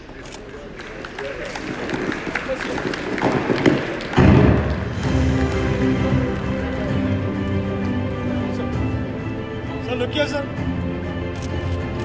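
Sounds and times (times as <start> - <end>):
hand clapping: 0.4 - 6.8.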